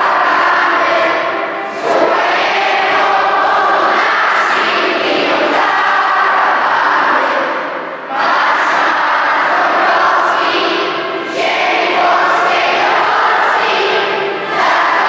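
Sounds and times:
children's choir singing: 0.0s - 15.0s.

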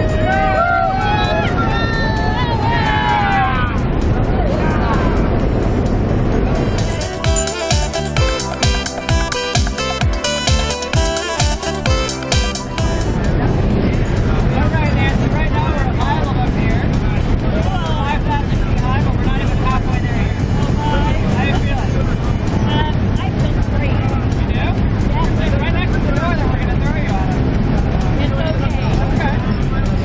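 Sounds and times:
raised voices: 0.0s - 5.4s
music: 0.0s - 30.0s
plane engine and propeller noise: 3.8s - 10.1s, 10.8s - 30.0s.

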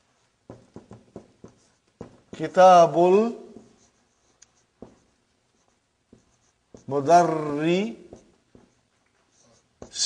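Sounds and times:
marker writing on whiteboard: 0.0s - 10.0s
soft marker taps: 0.4s - 2.7s, 3.5s - 10.0s.

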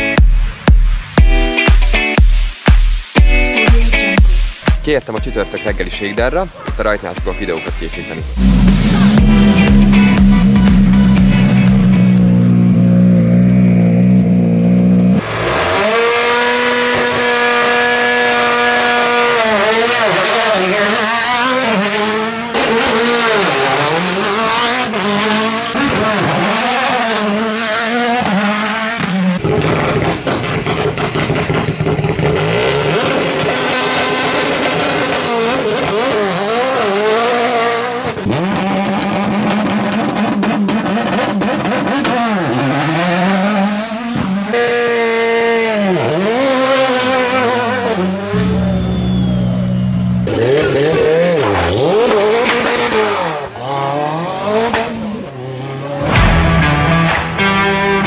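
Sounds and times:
rally car engines revving: 5.4s - 58.0s
exhaust pops and cracks: 29.4s - 35.9s.

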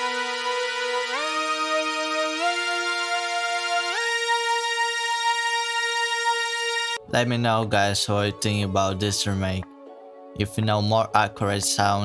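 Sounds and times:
synthesizer lead sustained note: 0.0s - 7.0s.

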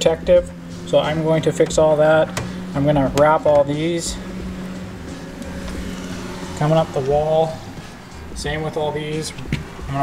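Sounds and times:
low rumble: 0.0s - 9.0s
low machine hum: 0.0s - 10.0s.

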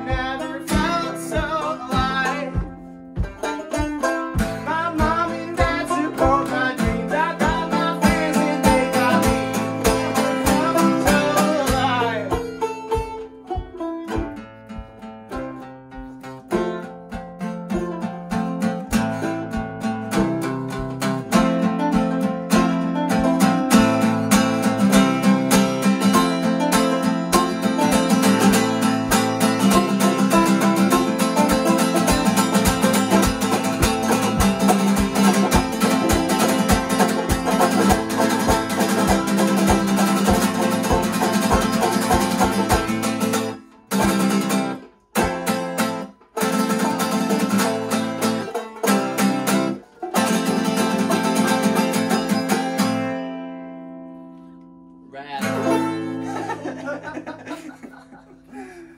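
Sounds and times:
acoustic guitar and banjo playing: 0.0s - 58.9s.

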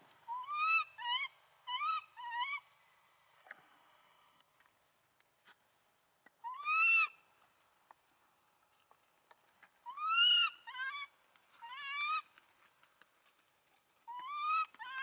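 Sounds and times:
baby monkey crying coo calls: 9.9s - 12.2s, 14.1s - 15.0s.

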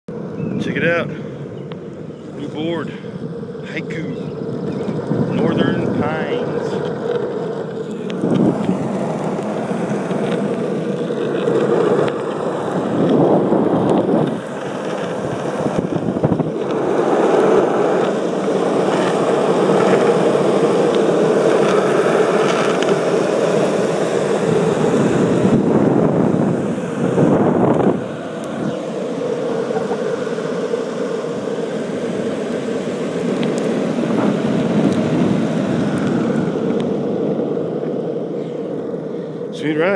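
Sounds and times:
skateboard wheels rolling on asphalt: 0.1s - 39.9s
wind on microphone: 0.2s - 39.9s.

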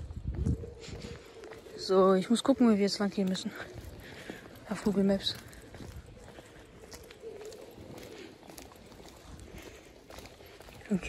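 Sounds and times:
bird calling faintly: 0.5s - 9.8s.

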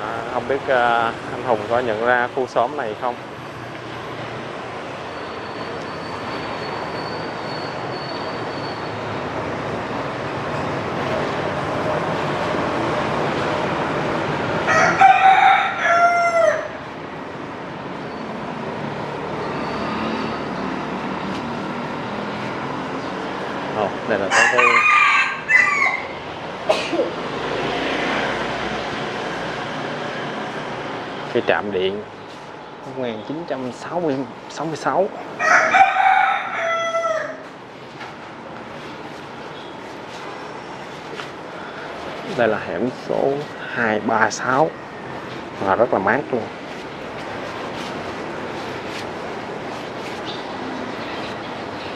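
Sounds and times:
steady background noise: 0.0s - 51.9s
rooster crowing: 14.6s - 16.8s, 24.3s - 26.2s, 35.4s - 37.5s.

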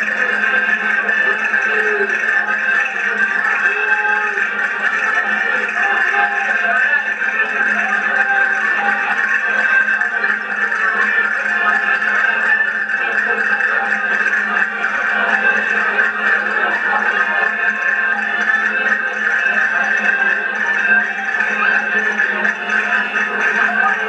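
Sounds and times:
accordions playing folk dance tune: 0.0s - 24.0s.

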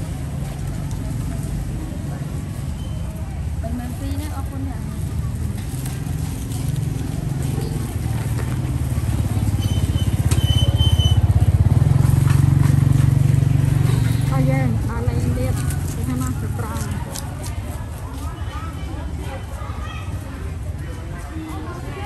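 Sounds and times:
voices: 0.0s - 22.0s
small motorbike engine running: 5.8s - 16.5s.

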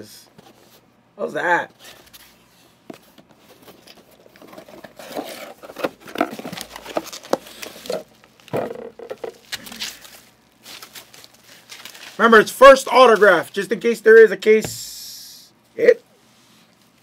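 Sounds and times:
cardboard box opening: 3.0s - 9.9s
bubble wrap crinkling: 3.5s - 13.6s.

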